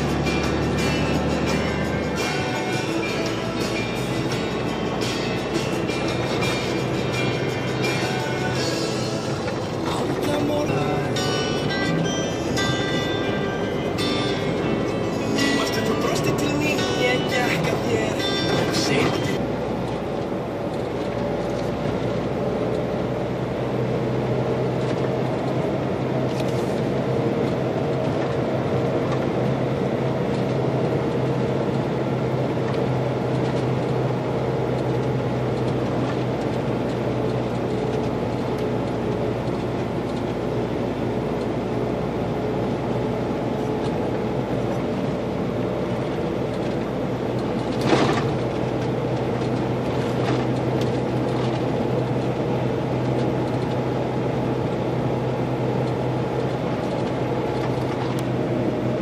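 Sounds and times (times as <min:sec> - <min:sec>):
truck engine and road noise hum: 0:00.0 - 0:59.0.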